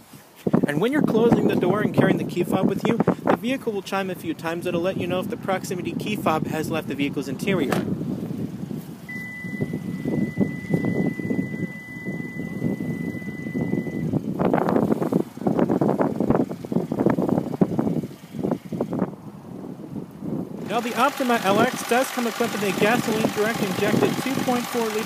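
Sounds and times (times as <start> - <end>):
high electronic warning tone: 9.1 - 14.1.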